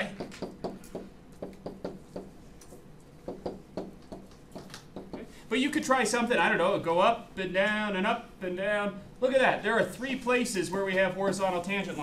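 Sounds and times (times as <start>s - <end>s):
stylus tapping on screen: 0.1s - 5.3s.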